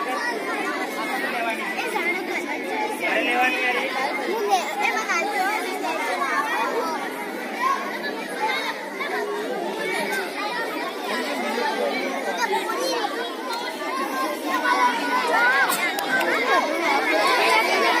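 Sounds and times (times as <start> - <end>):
children chattering: 0.0 - 18.0.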